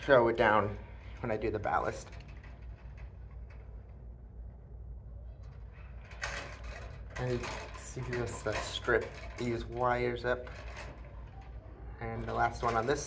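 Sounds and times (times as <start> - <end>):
low steady hum: 0.0 - 13.0
wire strippers clicking and scraping: 0.0 - 13.0.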